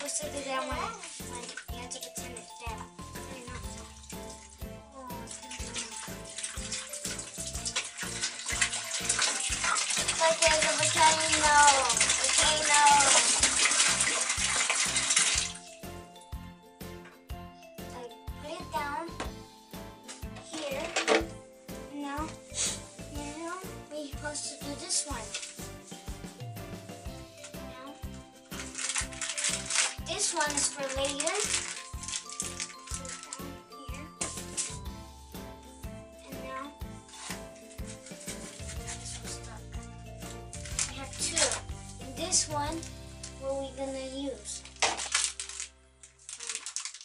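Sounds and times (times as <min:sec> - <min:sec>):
water pouring into plastic tub: 0:00.0 - 0:16.0, 0:20.1 - 0:43.4, 0:44.5 - 0:47.0
background music with steady beat: 0:00.0 - 0:44.6
music with steady beat: 0:21.2 - 0:29.2, 0:32.0 - 0:41.0
powder packet rattling: 0:28.4 - 0:33.6, 0:44.6 - 0:47.0.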